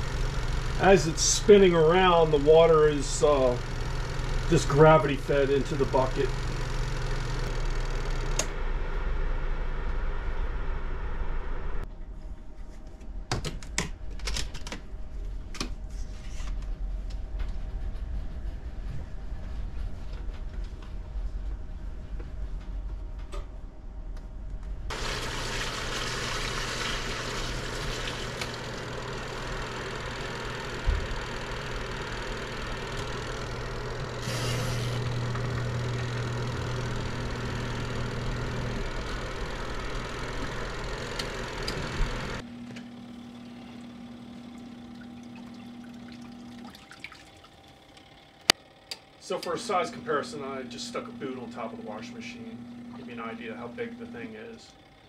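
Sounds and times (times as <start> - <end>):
spin dryer motor hum: 0.0 - 55.0
water rushing into a bucket: 24.9 - 28.9, 45.0 - 47.6.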